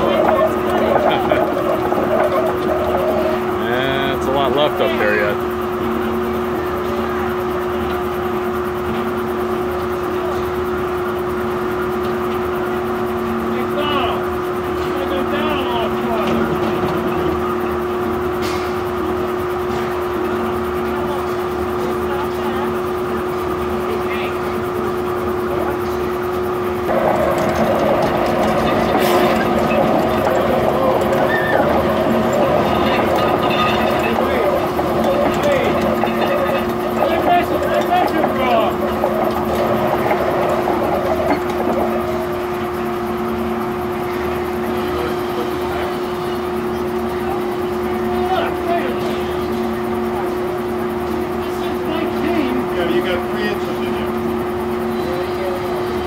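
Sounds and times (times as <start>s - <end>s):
circular saw blade humming: 0.0s - 5.4s, 26.6s - 43.4s.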